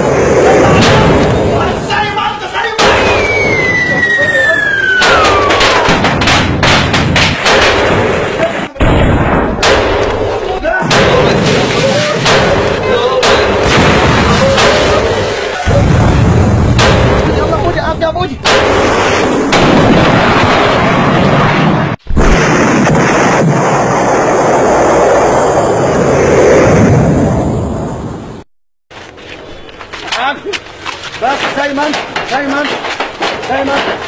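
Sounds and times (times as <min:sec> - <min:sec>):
pyrotechnic charge rushing: 0:00.0 - 0:02.0, 0:02.8 - 0:28.4
loud explosive bangs: 0:00.0 - 0:28.0.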